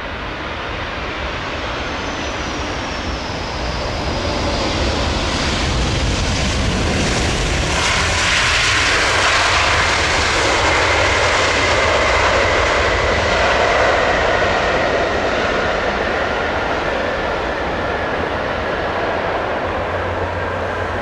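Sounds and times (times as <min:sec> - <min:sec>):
high jet engine whine: 0:00.0 - 0:21.0
jet engines rushing: 0:00.0 - 0:21.0.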